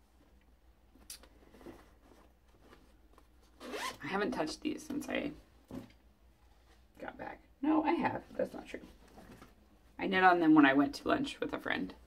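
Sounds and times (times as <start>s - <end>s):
faint handling rustling: 0.0s - 4.0s, 4.7s - 7.0s, 8.0s - 10.0s
zipper pulled: 3.6s - 4.2s.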